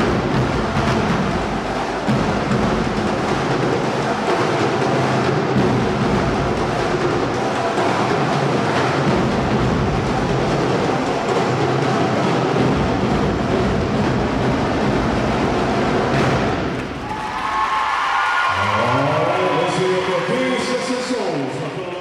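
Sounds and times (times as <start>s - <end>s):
drum corps drumming: 0.0s - 21.2s.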